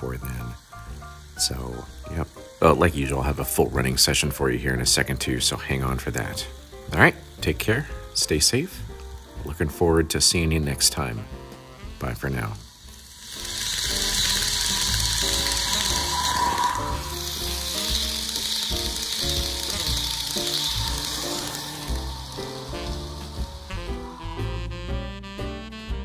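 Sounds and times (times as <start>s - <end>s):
model train wheels hissing on rail: 0.0s - 25.0s
background music: 0.0s - 26.0s.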